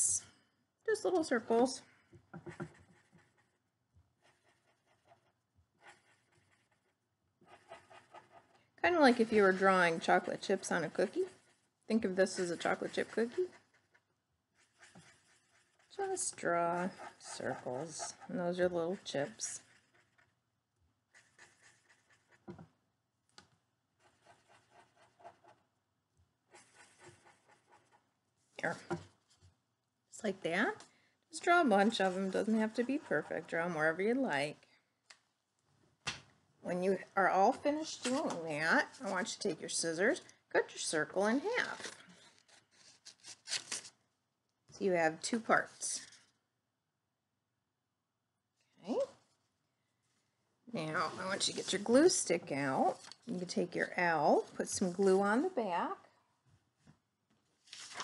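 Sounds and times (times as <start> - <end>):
marker drawing on paper: 2.4 - 20.4, 21.0 - 22.7, 24.0 - 25.7, 26.4 - 29.5, 31.4 - 34.2, 50.9 - 52.2.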